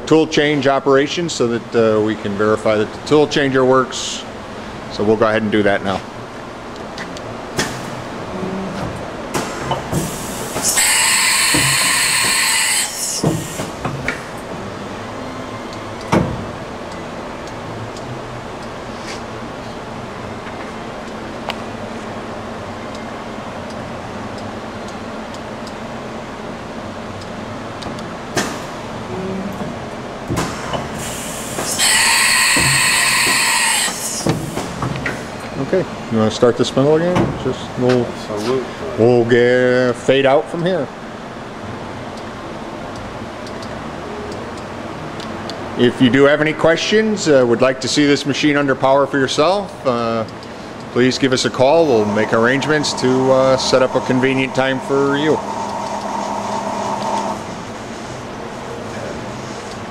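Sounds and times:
machine humming: 0:06.5 - 0:29.8, 0:50.2 - 0:58.8
compressed air hiss: 0:09.6 - 0:13.8, 0:30.5 - 0:34.7.

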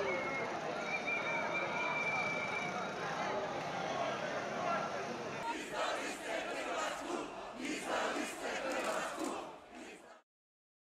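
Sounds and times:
crowd shouting together: 0:05.4 - 0:10.2.

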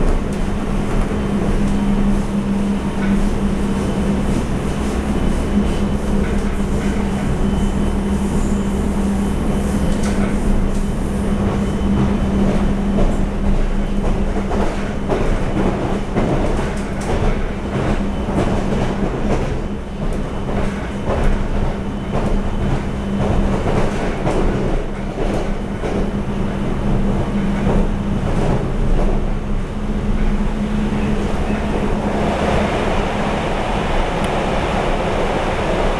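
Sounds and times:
train cabin rumble and hum: 0:00.0 - 0:35.9.

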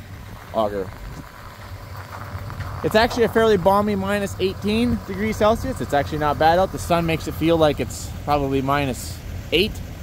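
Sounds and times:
tractor engine idling: 0:00.0 - 0:10.0
man talking: 0:00.5 - 0:01.0, 0:02.8 - 0:09.9.

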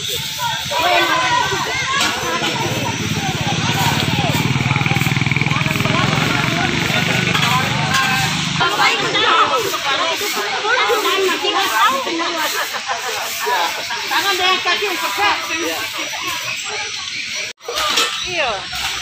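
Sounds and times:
many people talking: 0:00.0 - 0:19.0
vehicle engine running: 0:00.7 - 0:11.5.

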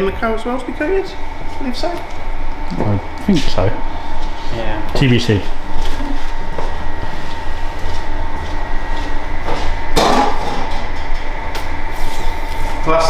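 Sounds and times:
low workshop hum: 0:00.0 - 0:13.0.

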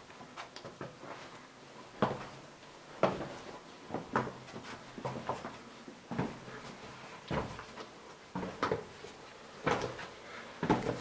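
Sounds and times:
footsteps echoing on stone floor: 0:00.0 - 0:11.0.

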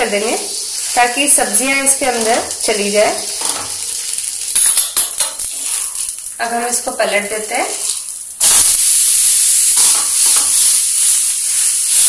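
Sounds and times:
batter sizzling in frying pan: 0:00.0 - 0:12.0.

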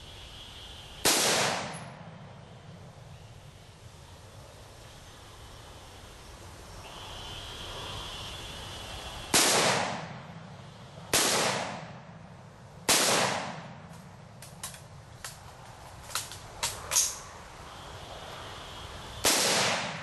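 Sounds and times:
rifle shots with echo: 0:01.0 - 0:01.9, 0:09.3 - 0:10.1, 0:11.1 - 0:12.0, 0:12.9 - 0:13.8, 0:19.2 - 0:20.0.

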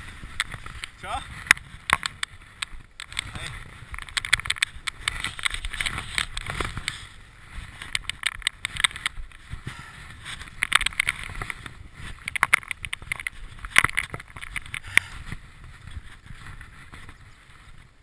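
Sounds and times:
bike tyres rumbling over dirt: 0:00.0 - 0:18.0
bike chain and frame clattering: 0:00.2 - 0:17.2.

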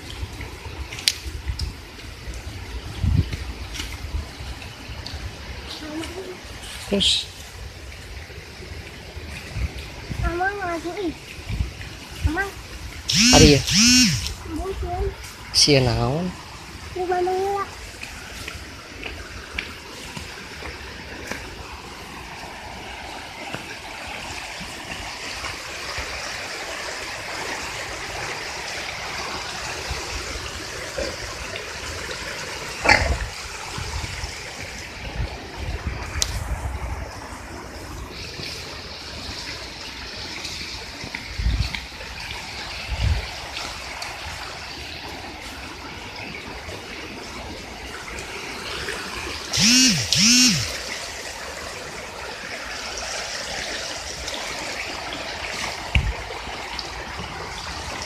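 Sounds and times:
creek flowing over stones: 0:00.0 - 0:58.0.

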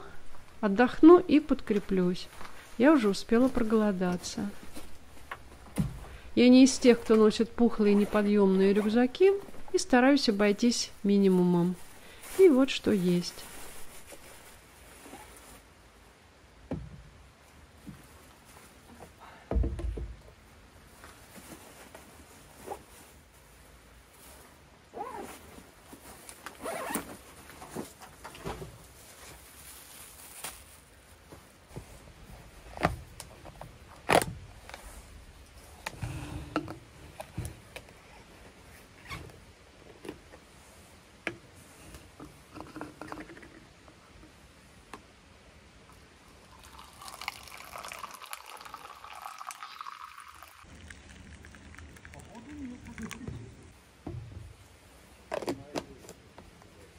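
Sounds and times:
rustling: 0:10.9 - 0:16.1, 0:20.8 - 0:36.3
tea pouring into plastic cup: 0:46.4 - 0:53.4.

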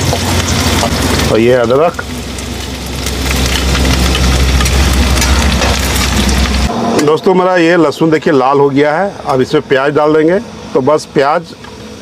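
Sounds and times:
garlic sizzling in hot oil: 0:00.0 - 0:06.7
low rumble: 0:00.0 - 0:09.3.

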